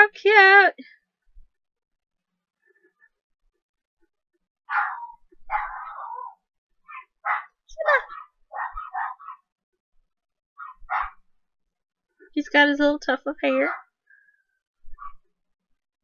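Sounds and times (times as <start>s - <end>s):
dog barking: 4.7s - 9.5s, 10.6s - 11.2s, 13.7s - 13.9s.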